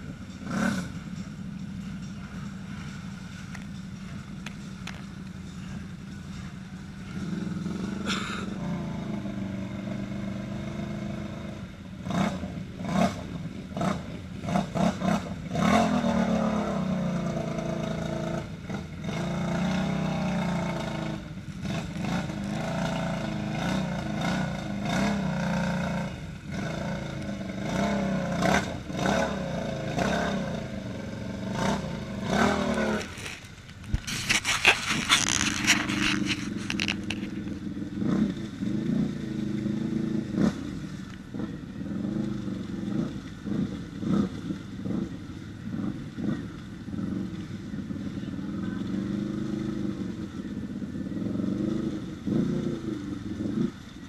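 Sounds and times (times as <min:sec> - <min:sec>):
atv engines revving: 0:00.0 - 0:54.0
water splashing: 0:18.7 - 0:54.0.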